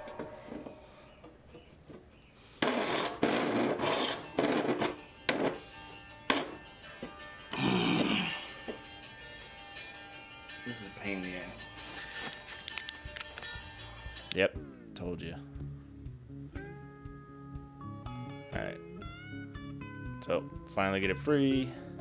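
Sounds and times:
quiet background music: 0:00.0 - 0:22.0
chisel scraping wood: 0:02.6 - 0:05.7.

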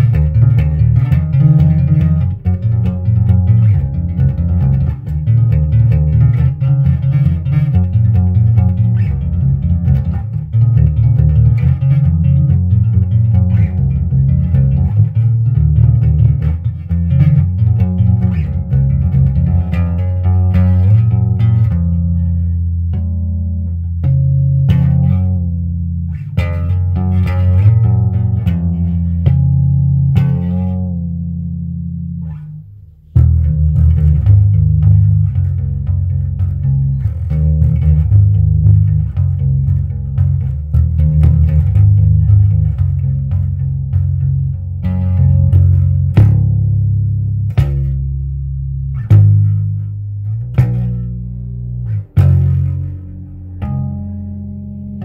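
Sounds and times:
electric bass guitar thumping: 0:00.0 - 0:55.0.

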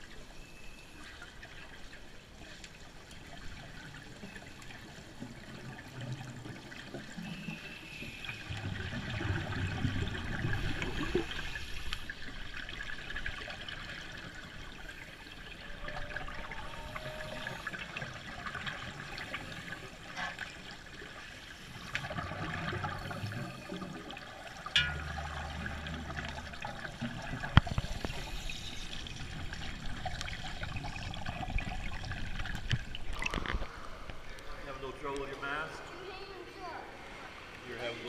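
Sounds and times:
scuba exhaust bubbles gurgling: 0:03.5 - 0:20.2, 0:20.9 - 0:33.9.

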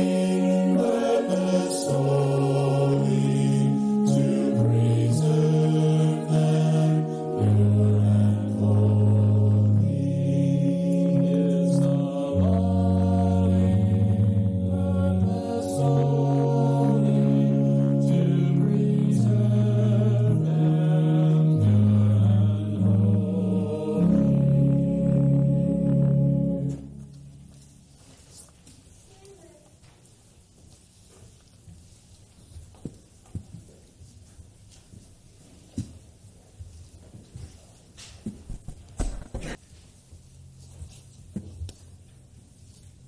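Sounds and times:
mixed choir singing: 0:00.0 - 0:26.9.

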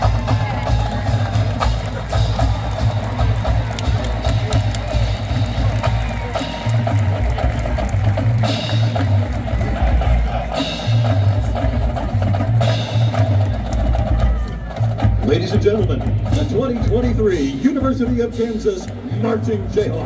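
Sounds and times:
bass drums: 0:00.0 - 0:20.0.

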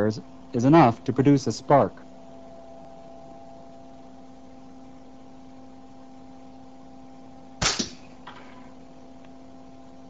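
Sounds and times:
sharp double crack of spark: 0:07.6 - 0:08.1.

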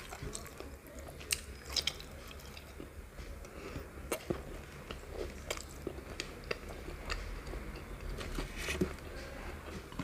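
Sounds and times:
close chewing mouth sounds: 0:00.0 - 0:02.9, 0:04.1 - 0:08.4.

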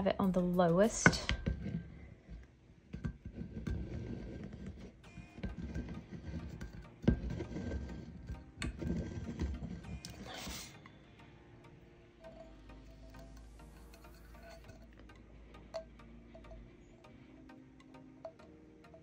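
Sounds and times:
hands rubbing vinyl on a tumbler: 0:01.4 - 0:10.9.

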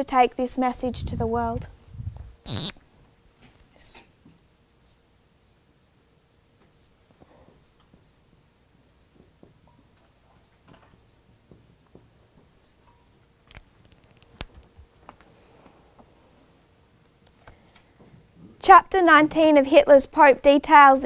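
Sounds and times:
marker squeaking on whiteboard: 0:02.5 - 0:02.8, 0:04.8 - 0:12.9.

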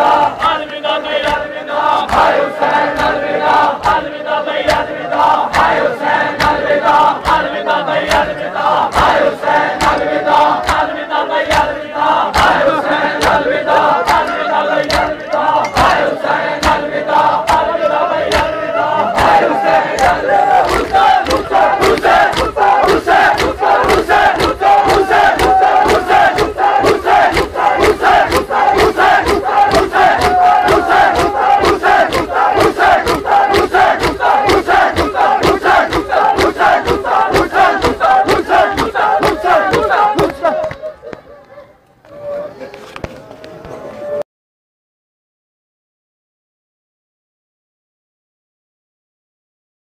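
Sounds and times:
men chanting in unison: 0:00.0 - 0:40.9
hands beating chests: 0:19.2 - 0:40.8.

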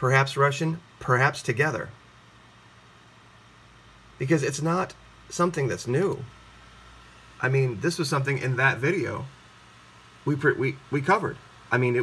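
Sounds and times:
faint low hum: 0:00.0 - 0:12.0
steady low hiss: 0:00.0 - 0:12.0.

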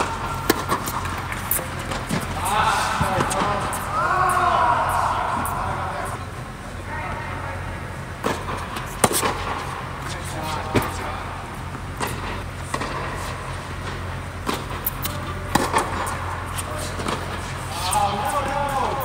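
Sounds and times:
tennis balls struck and bouncing: 0:00.0 - 0:06.4, 0:08.1 - 0:19.0
faint voices: 0:00.0 - 0:08.4
steady low hum: 0:00.0 - 0:19.0.

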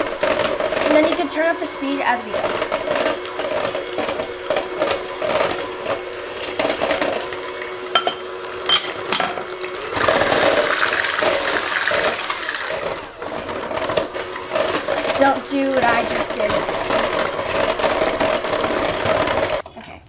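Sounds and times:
electric hand mixer whirring: 0:00.0 - 0:19.6.

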